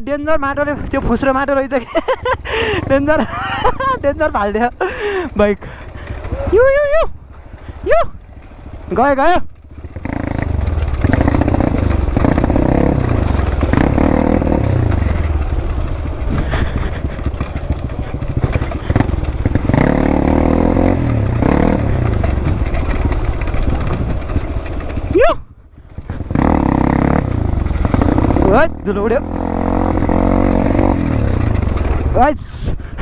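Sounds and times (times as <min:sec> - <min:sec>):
dirt bike engine revving: 0:07.6 - 0:25.2, 0:25.9 - 0:32.4.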